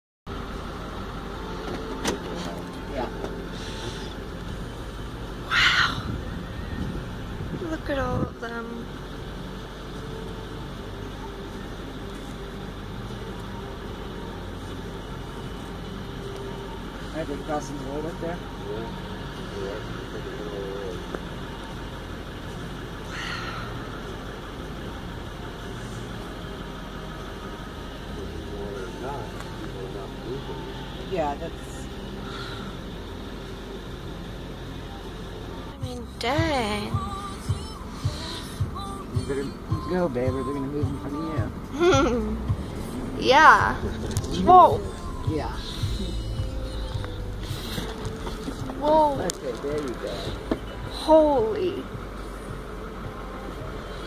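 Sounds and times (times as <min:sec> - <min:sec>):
car road noise from inside: 0:00.3 - 0:54.0.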